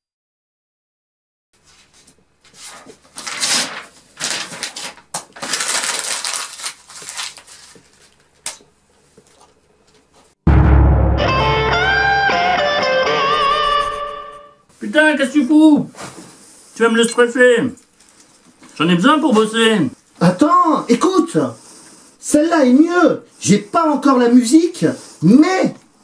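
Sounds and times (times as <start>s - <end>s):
rustling noise: 1.6s - 8.3s
loud guitar music: 10.5s - 14.6s.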